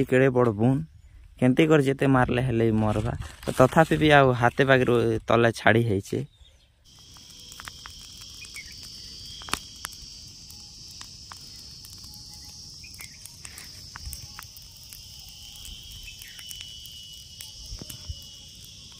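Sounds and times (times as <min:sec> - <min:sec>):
shrill insect chorus: 0:06.9 - 0:18.9
small crackles and clicks: 0:06.9 - 0:18.9.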